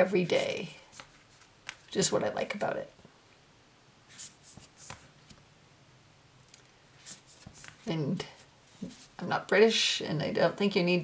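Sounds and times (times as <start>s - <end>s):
cards sliding over one another: 4.1s - 5.4s, 7.0s - 7.9s.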